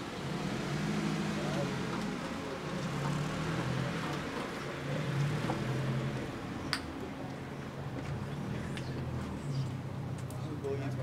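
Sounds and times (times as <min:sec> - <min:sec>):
traffic noise with engine hum: 0:00.0 - 0:11.0.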